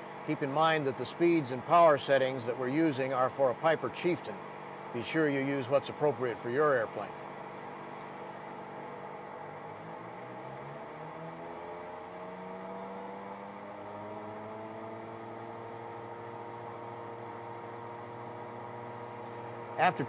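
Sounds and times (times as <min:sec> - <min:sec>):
simulated piston engines humming: 0:00.0 - 0:20.0.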